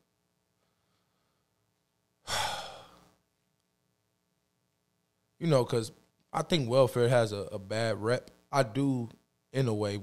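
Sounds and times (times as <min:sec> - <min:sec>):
man sighing: 0:02.2 - 0:03.0.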